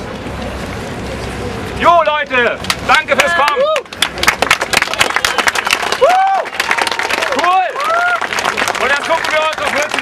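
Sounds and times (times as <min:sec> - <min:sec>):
crowd applauding: 0:02.7 - 0:10.0.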